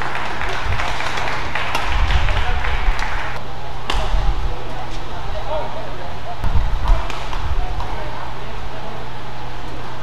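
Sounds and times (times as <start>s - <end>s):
spectators applauding: 0.0s - 3.4s.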